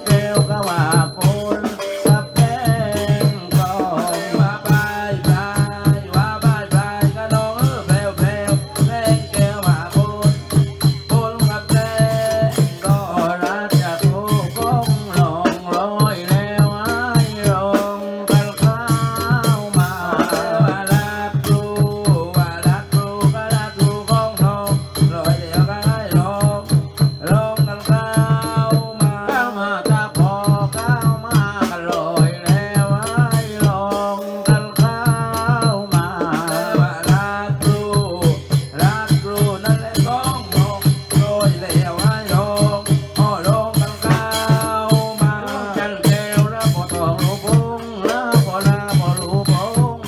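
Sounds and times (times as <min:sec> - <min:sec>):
steady drum beat: 0:00.0 - 0:50.0.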